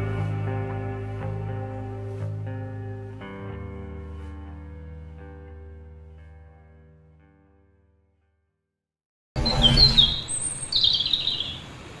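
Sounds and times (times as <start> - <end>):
birds chirping: 9.4 - 12.0.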